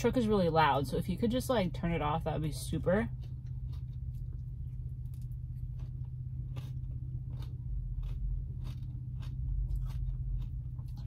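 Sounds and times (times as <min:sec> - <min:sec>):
person eating: 0:02.6 - 0:11.0.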